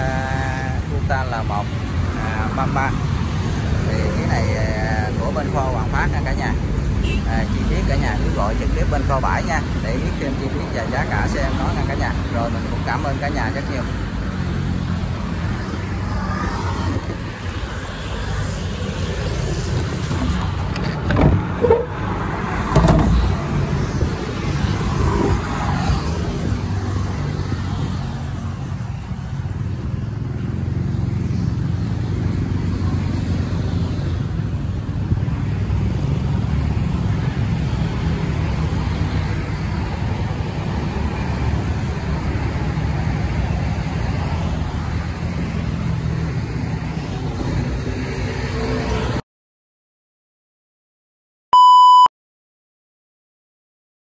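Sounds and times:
engine knocks: 22.7s - 23.4s.

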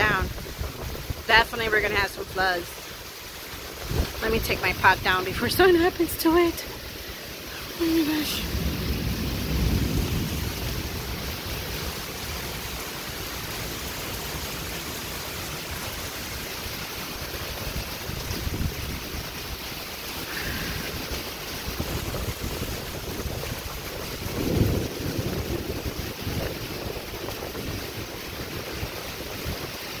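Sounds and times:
wind buffeting microphone: 0.0s - 2.6s, 3.7s - 5.6s, 17.6s - 19.3s, 20.9s - 29.8s
heavy rain pouring: 0.0s - 30.0s.

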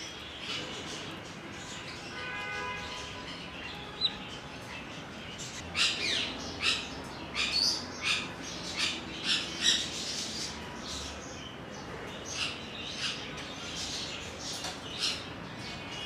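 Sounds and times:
caged birds squawking: 0.0s - 16.0s.

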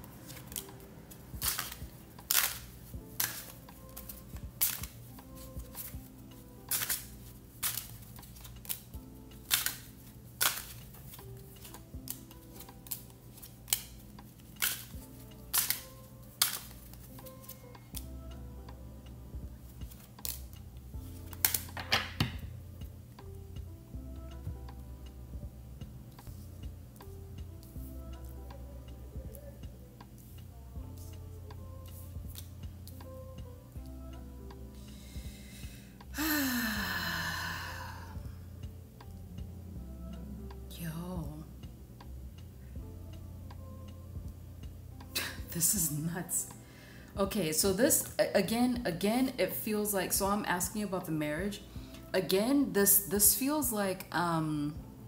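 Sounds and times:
quiet background music: 0.0s - 55.0s
cards rustling: 0.1s - 18.0s, 19.9s - 20.5s, 21.3s - 22.3s
cards snapping on wooden table: 1.4s - 5.0s, 6.7s - 14.0s, 14.6s - 17.6s, 21.3s - 22.4s.

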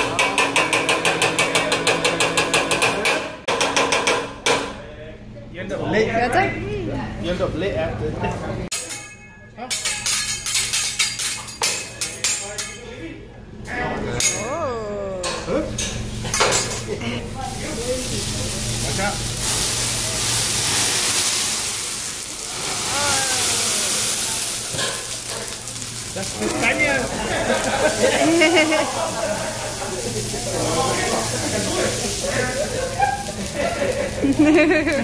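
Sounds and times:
metal spatula clattering on griddle: 8.7s - 12.9s
oil sizzling on hot griddle: 17.4s - 35.0s.

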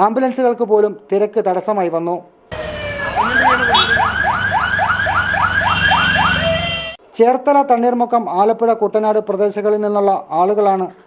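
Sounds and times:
vehicle alarm rising chirps: 2.5s - 7.0s.

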